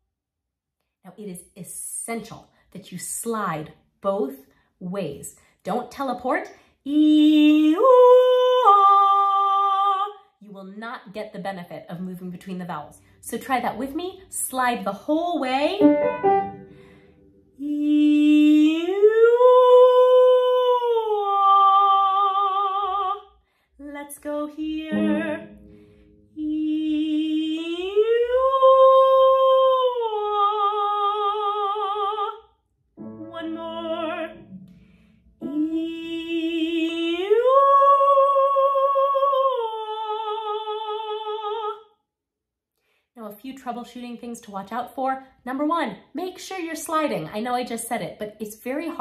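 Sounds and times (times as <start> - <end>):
woman singing vocal slide: 12.9 - 32.4, 33.2 - 41.8.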